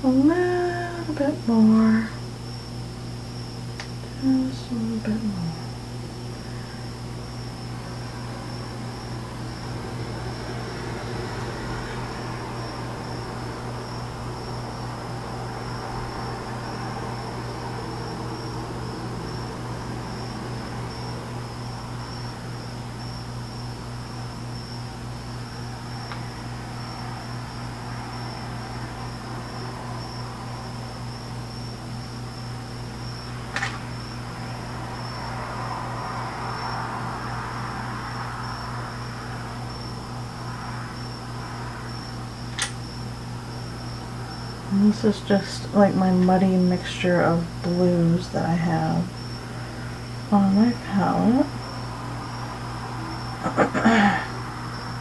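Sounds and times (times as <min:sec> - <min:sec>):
low steady hum: 0:00.0 - 0:55.0
sharp click: 0:42.5 - 0:42.8.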